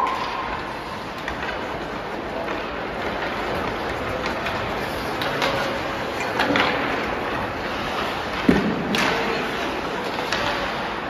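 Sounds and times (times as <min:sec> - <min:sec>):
hockey stick and puck clicks: 0:00.0 - 0:11.0
skate blades scraping ice: 0:00.0 - 0:11.0.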